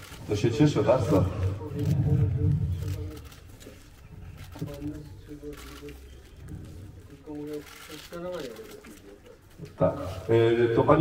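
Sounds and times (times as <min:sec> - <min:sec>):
quiet voices: 0:00.4 - 0:10.4.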